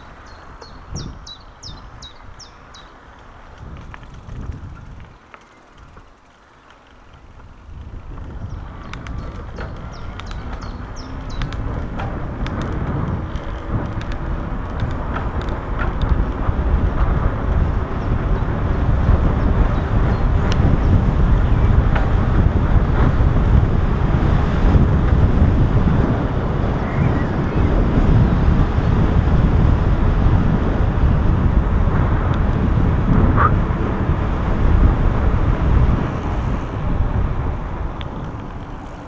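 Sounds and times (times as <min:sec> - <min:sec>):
wind rushing over microphone: 0:00.0 - 0:06.2, 0:06.9 - 0:39.0
bike clicks and rattles: 0:02.0 - 0:39.0.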